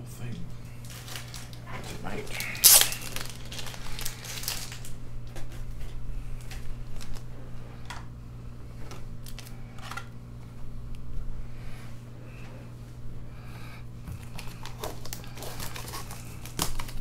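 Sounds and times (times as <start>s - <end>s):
low steady hum: 0.0s - 17.0s
packaging tearing: 0.8s - 5.6s, 14.2s - 17.0s.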